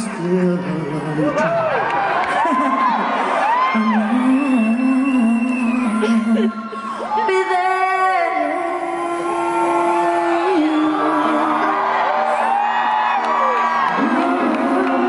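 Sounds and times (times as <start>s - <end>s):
woman singing: 0.0s - 1.7s, 3.6s - 12.5s, 13.8s - 15.0s
audience whooping and cheering: 1.3s - 15.0s
man singing: 3.8s - 6.6s, 13.9s - 15.0s.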